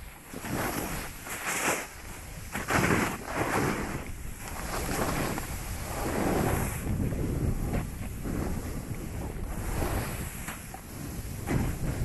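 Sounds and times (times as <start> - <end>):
wind rushing over microphone: 0.0 - 12.0
snowboard scraping over snow: 0.1 - 12.0.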